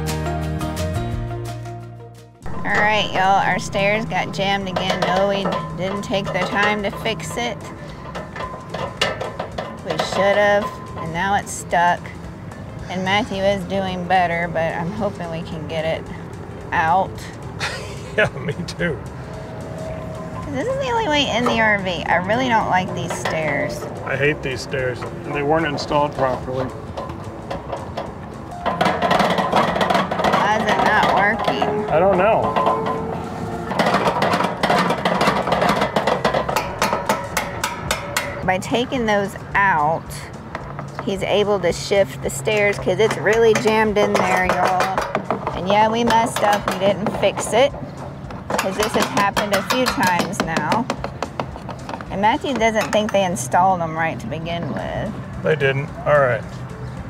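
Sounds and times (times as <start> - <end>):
metal stairs clicking and clattering: 2.4 - 17.8, 19.1 - 53.7
metal tool clicks and knocks: 26.0 - 38.6, 42.7 - 53.2.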